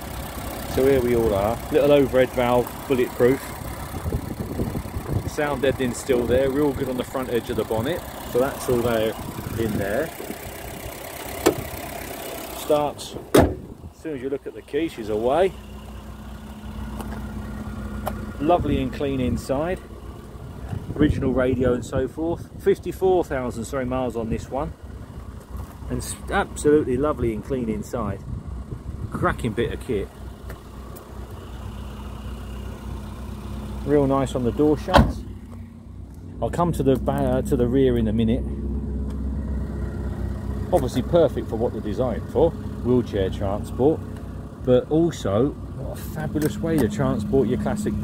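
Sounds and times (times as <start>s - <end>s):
engine idling: 0.0s - 48.0s.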